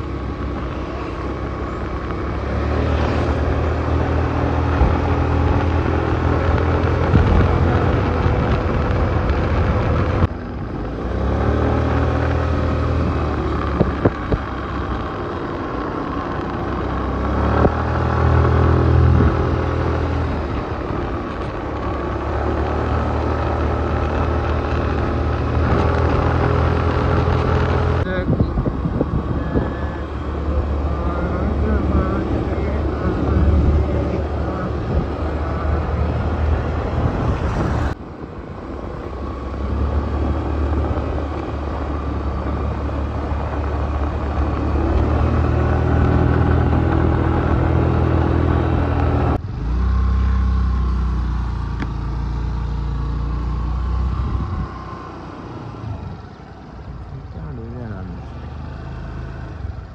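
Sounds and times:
motorcycle engine running: 0.0 - 59.9
wind and road noise: 0.0 - 59.9.

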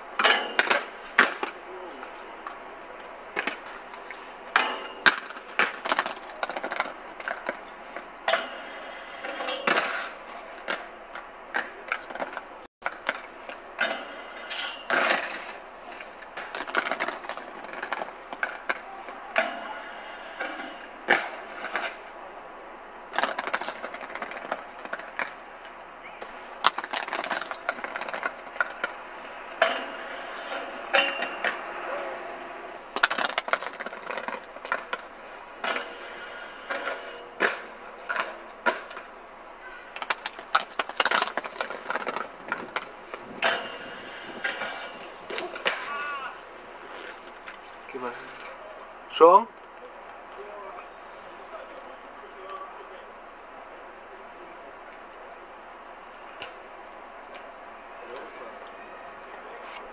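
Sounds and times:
inline skates rolling on paving: 0.0 - 22.3, 22.9 - 48.9
skates clacking on metal handrail: 0.2 - 1.6, 26.6 - 31.7, 32.9 - 46.4.

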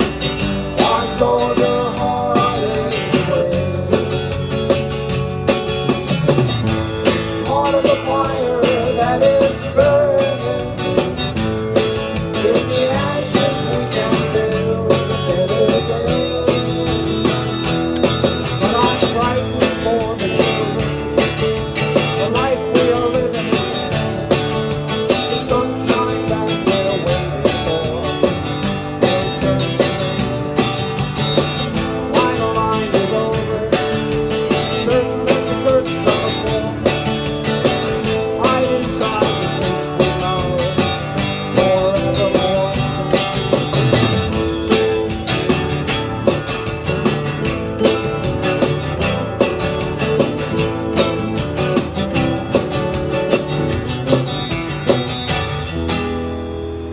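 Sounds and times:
acoustic guitars strumming: 0.0 - 56.9.

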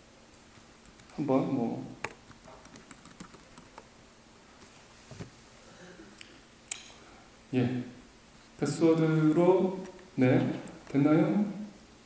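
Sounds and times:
faint keyboard typing: 0.8 - 1.3, 2.0 - 3.9.

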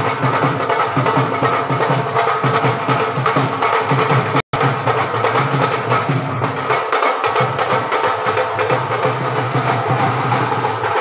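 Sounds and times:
loud music with drums: 0.0 - 11.0.

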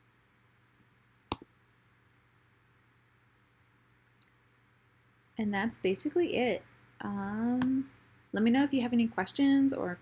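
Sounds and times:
air conditioner and fan hum: 0.0 - 10.0.

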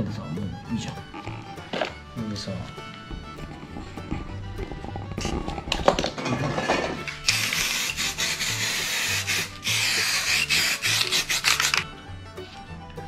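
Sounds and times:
background music with bass line: 0.0 - 13.0
spray can hissing: 7.2 - 11.8.

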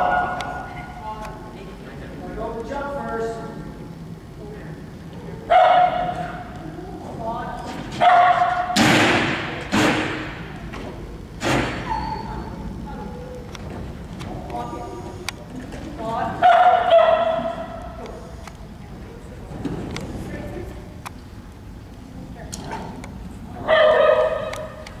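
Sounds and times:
dog barking: 0.0 - 0.7, 5.5 - 6.4, 8.0 - 8.8, 16.4 - 17.8, 23.6 - 24.8.

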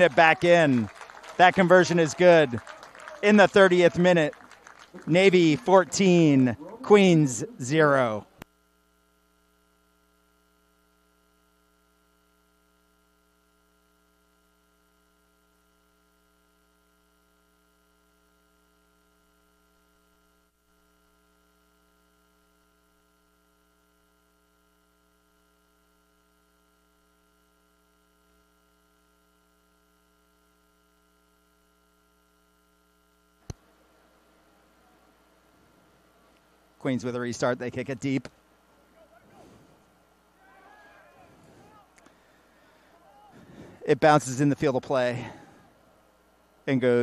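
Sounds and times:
faint electrical hum: 0.0 - 47.0.

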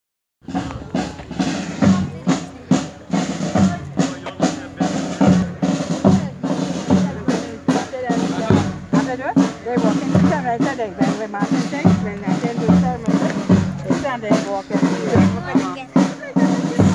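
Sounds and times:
marching band playing a funeral march: 0.4 - 16.9
snare and bass drums beating: 0.4 - 16.9.

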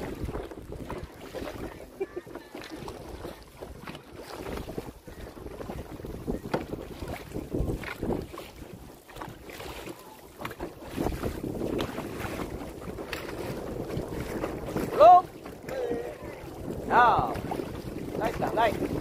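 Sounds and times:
water splashing around boat: 0.0 - 19.0
wind buffeting microphone: 0.0 - 19.0.

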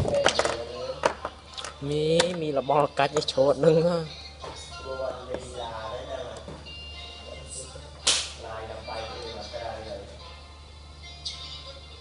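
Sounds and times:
sharp crack: 8.0 - 8.4.

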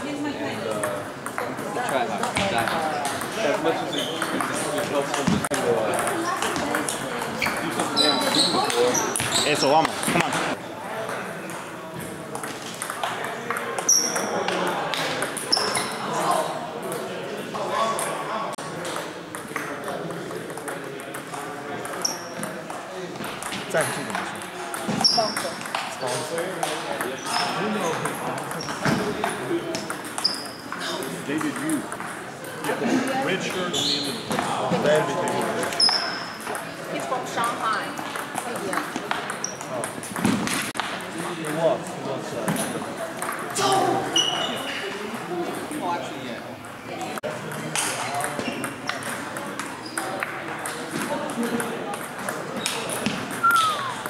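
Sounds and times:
short high squeaks: 7.4 - 9.7, 53.4 - 54.0
high-pitched squeak: 53.4 - 54.0.

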